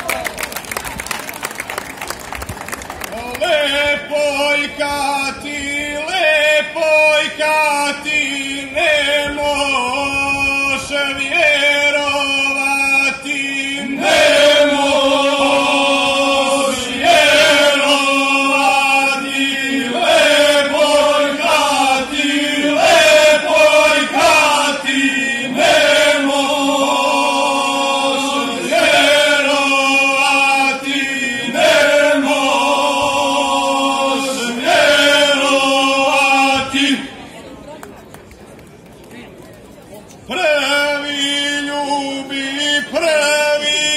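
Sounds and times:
male choir singing unaccompanied: 0:03.4 - 0:37.1.

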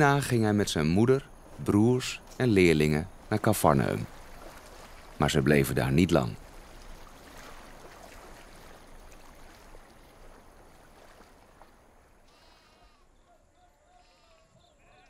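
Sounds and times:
soft noisy ambience: 0:00.0 - 0:15.0.

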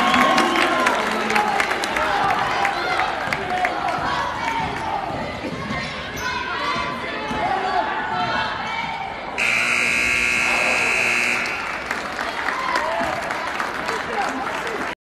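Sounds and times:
crowd noise: 0:00.0 - 0:15.0
scoreboard buzzer tone: 0:09.4 - 0:11.9.

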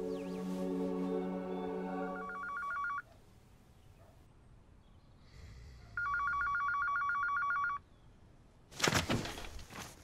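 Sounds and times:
warbling telephone ring: 0:02.2 - 0:03.0
papers rustling: 0:08.7 - 0:10.0.

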